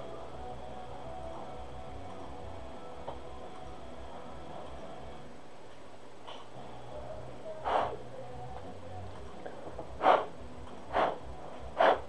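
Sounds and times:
person sniffing: 7.6s - 8.0s, 10.0s - 10.3s, 10.9s - 11.2s, 11.8s - 12.0s.

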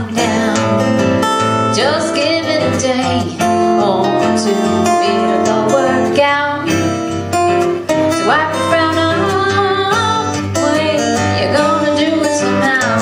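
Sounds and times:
strummed acoustic guitar: 0.0s - 13.0s.

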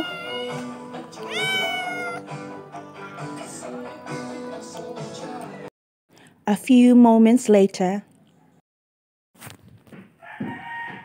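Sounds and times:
kitten meowing: 0.0s - 0.6s, 1.2s - 2.2s.

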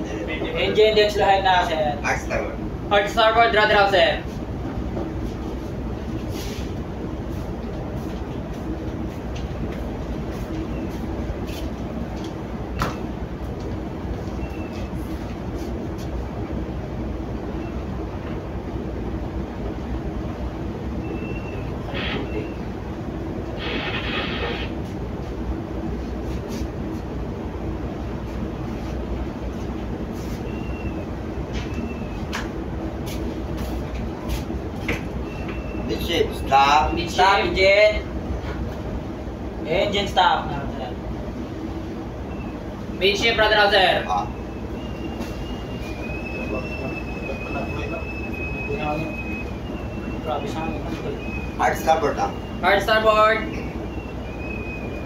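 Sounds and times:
ship engine low rumble: 0.0s - 55.0s.

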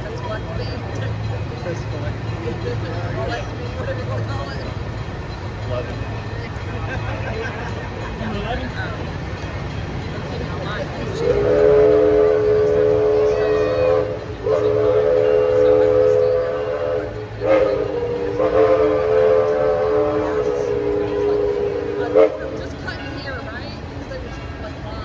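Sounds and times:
steam locomotive chime whistle: 8.1s - 25.0s.

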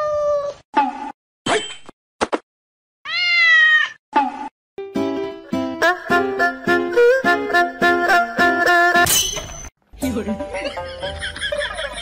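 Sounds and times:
cat meowing: 3.0s - 4.0s.

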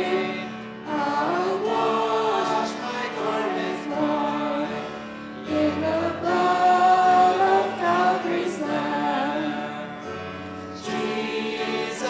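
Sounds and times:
men and women singing a hymn: 0.0s - 12.0s.

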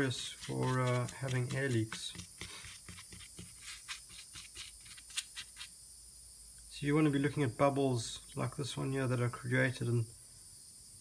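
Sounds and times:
paintbrush scrubbing on metal: 0.0s - 5.7s.

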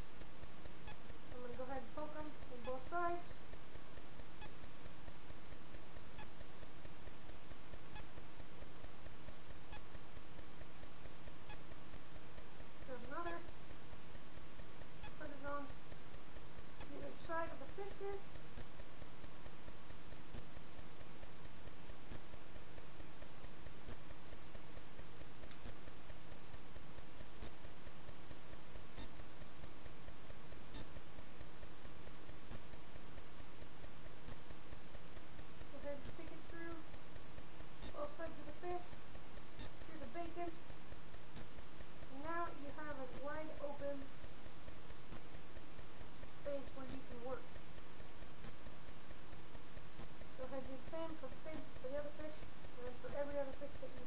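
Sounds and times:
faint ticks: 0.0s - 54.0s
hiss with low hum: 0.0s - 54.0s.

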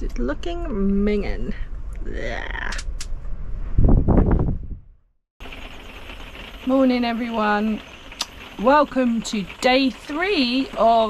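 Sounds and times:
loud rumbling: 0.0s - 11.0s
heavy rain on vehicle roof: 5.4s - 11.0s.

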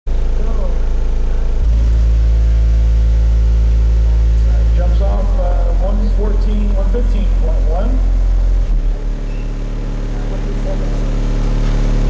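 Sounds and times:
loud low bass tone: 0.1s - 12.0s.

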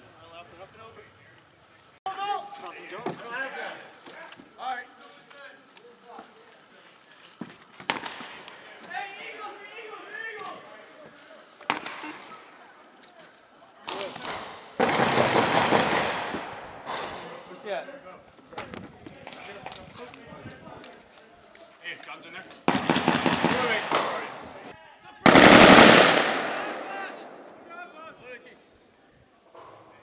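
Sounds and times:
automatic gunfire bursts: 14.8s - 16.6s, 22.7s - 24.3s, 25.3s - 27.2s
heavy echoing blast: 25.3s - 27.9s.

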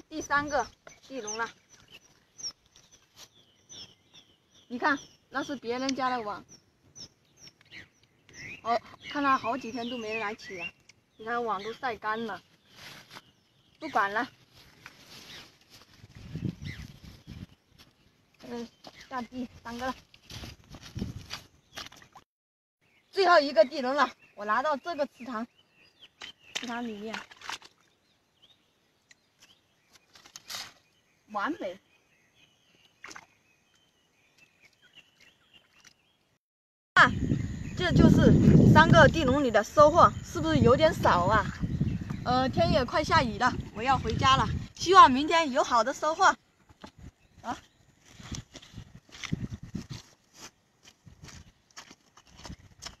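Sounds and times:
footsteps on wet grass: 12.3s - 22.2s, 46.8s - 53.0s
grass rustling: 12.4s - 22.2s, 46.7s - 53.0s
fish trap splashing into water: 26.5s - 27.8s.

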